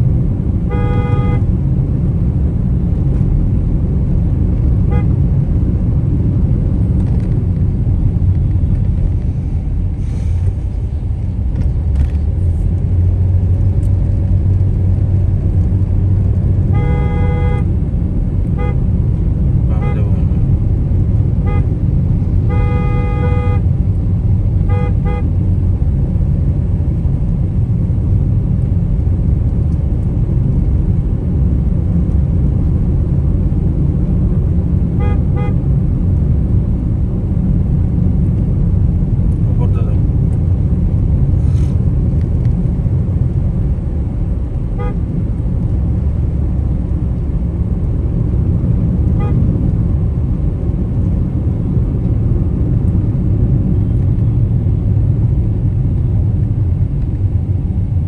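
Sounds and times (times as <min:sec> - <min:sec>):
road and engine rumble in cabin: 0:00.0 - 0:58.0
vehicle horn honking: 0:00.7 - 0:01.5, 0:04.8 - 0:05.1, 0:16.7 - 0:17.7, 0:18.5 - 0:18.8, 0:19.7 - 0:20.3, 0:21.4 - 0:21.8, 0:22.4 - 0:23.7, 0:24.6 - 0:25.4, 0:35.0 - 0:35.6, 0:44.8 - 0:45.0, 0:49.1 - 0:49.4.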